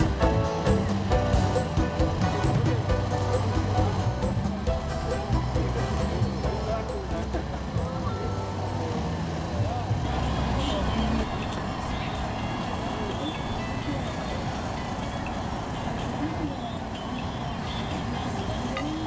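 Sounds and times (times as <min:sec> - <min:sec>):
distant people talking: 0:00.0 - 0:19.0.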